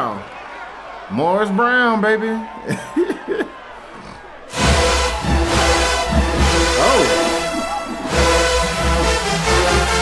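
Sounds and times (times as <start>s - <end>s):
man laughing: 2.6s - 3.6s, 6.8s - 8.4s
marching band brass playing loudly: 4.5s - 10.0s.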